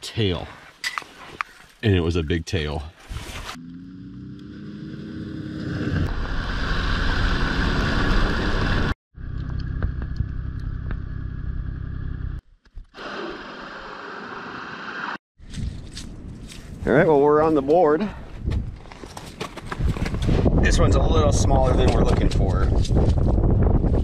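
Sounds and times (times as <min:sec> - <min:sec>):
vehicle engine running: 0:06.1 - 0:12.4.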